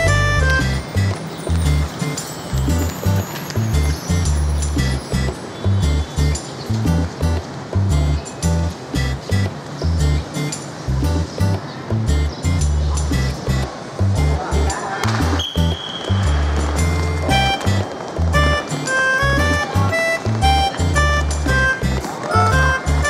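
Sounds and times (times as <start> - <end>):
ticking percussion: 0.0 - 5.5, 15.1 - 23.0
music with heavy bass beat: 0.0 - 23.0.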